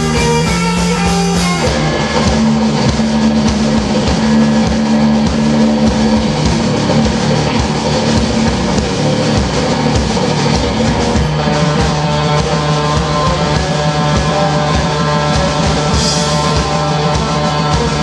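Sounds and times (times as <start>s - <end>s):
drum kit: 0.0s - 18.0s
surf rock band playing: 0.0s - 18.0s
twangy electric guitar: 0.0s - 18.0s.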